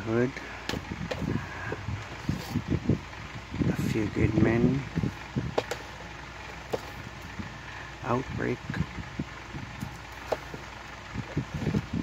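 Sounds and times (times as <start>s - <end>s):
room fan running: 0.0s - 12.0s.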